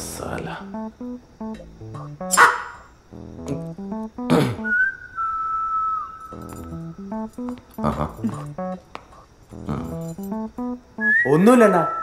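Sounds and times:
plucked-string music: 0:00.6 - 0:02.4, 0:03.1 - 0:04.7, 0:06.3 - 0:08.9, 0:09.5 - 0:11.1
long whistled note: 0:04.6 - 0:06.5, 0:11.0 - 0:12.0.

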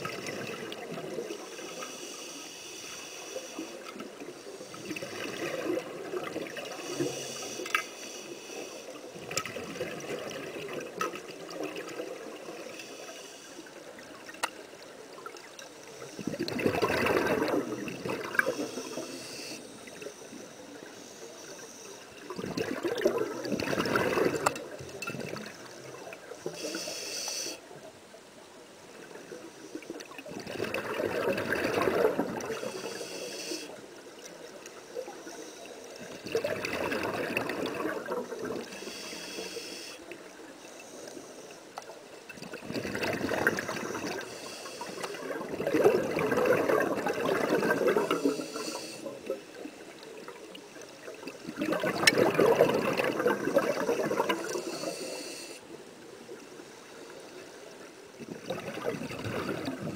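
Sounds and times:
regulator inhale hiss: 0:01.2 - 0:05.5, 0:06.6 - 0:09.3, 0:12.4 - 0:14.0, 0:15.6 - 0:16.5, 0:18.4 - 0:22.3, 0:25.7 - 0:27.8, 0:32.4 - 0:34.0, 0:34.6 - 0:36.2, 0:38.3 - 0:41.9, 0:43.4 - 0:45.5, 0:47.7 - 0:49.7, 0:53.8 - 0:55.8
exhaust bubbles rumbling underwater: 0:16.0 - 0:19.0, 0:22.2 - 0:26.2, 0:30.2 - 0:32.8, 0:36.1 - 0:38.8, 0:42.4 - 0:44.5, 0:45.1 - 0:49.5, 0:51.3 - 0:54.9, 0:58.2 - 0:59.9.

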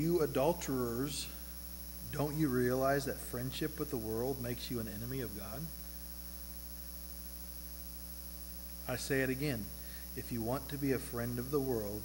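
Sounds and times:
electrical mains hum: 0:00.0 - 0:12.0
man's voice: 0:08.9 - 0:12.0.

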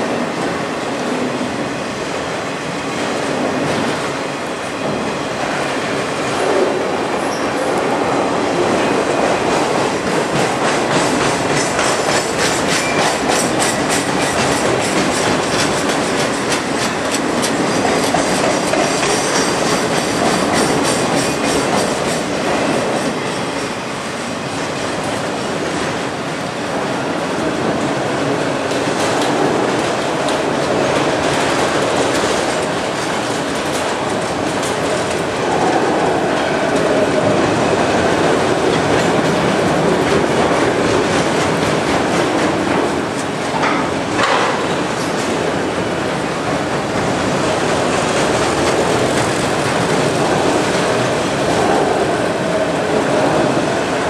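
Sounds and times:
freight train rumbling past: 0:00.0 - 0:54.0
wheels clacking over rail joints: 0:08.8 - 0:23.8, 0:28.6 - 0:54.0.

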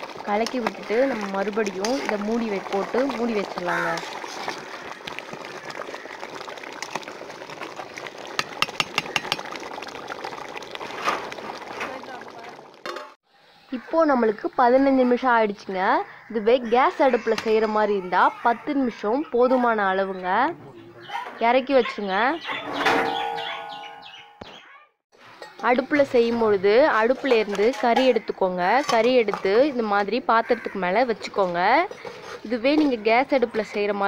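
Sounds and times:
pot bubbling and hissing: 0:00.0 - 0:19.8, 0:25.2 - 0:34.0
small birds chirping: 0:20.0 - 0:24.8.

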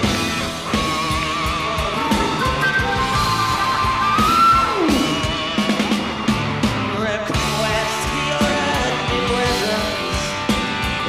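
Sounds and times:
rock band playing: 0:00.0 - 0:11.0
wavering lead line: 0:00.1 - 0:08.6.

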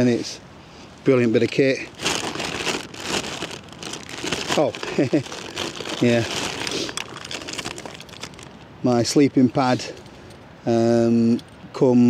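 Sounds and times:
plastic bag rustling: 0:01.4 - 0:08.7.

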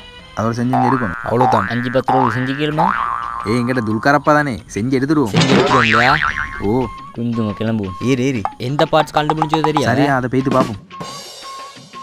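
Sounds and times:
background music: 0:00.0 - 0:12.0
men talking animatedly: 0:00.4 - 0:10.8.

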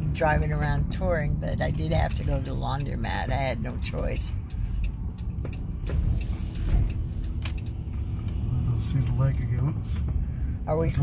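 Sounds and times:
car engine and tyres rumbling: 0:00.0 - 0:11.0
brief hiss: 0:06.1 - 0:07.3.

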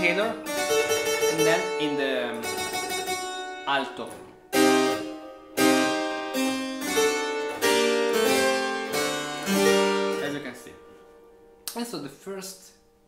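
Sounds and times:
harpsichord chords: 0:00.0 - 0:13.0.

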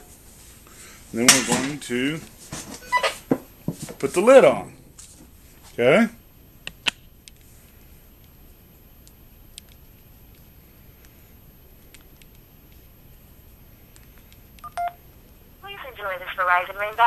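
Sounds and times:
faint clicks: 0:09.0 - 0:11.2, 0:13.9 - 0:14.9
phone keypad touch-tone beep: 0:14.6 - 0:15.0.

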